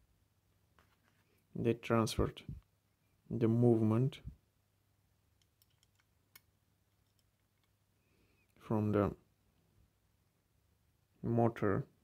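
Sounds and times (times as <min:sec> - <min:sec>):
small metal and plastic clicks: 0:05.4 - 0:07.8.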